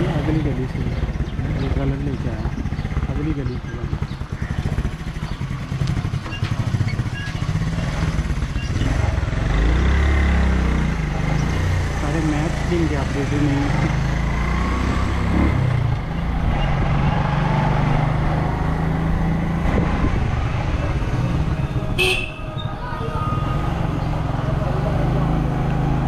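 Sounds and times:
small motorcycle engine running: 0.0s - 18.7s
road noise: 0.0s - 26.0s.

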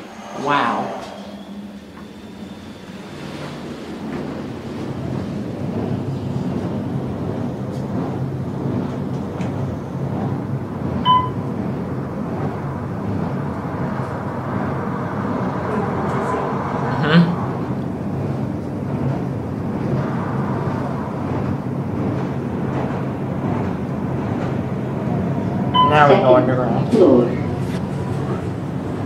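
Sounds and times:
elevator cab rushing hum: 0.0s - 29.0s
short high beep: 11.0s - 11.4s, 25.8s - 26.1s.

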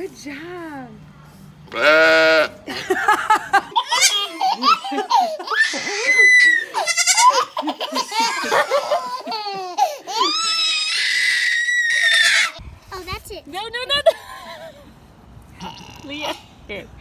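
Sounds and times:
goat bleating: 1.7s - 2.6s, 3.8s - 4.3s, 5.9s - 7.5s
baby and adults laughing: 2.7s - 11.0s.

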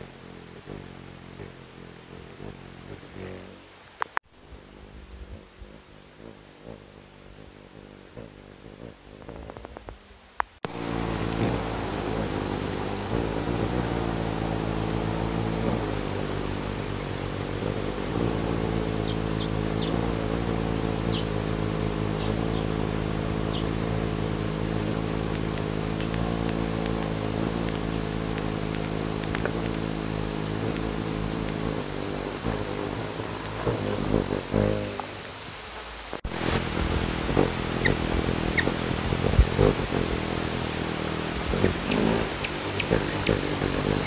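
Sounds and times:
high hummingbird chirps: 0.0s - 44.0s
hummingbird wings humming: 0.0s - 44.0s.

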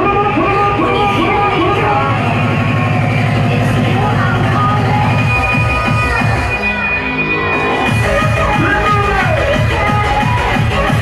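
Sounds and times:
hardcore dance music: 0.0s - 11.0s.

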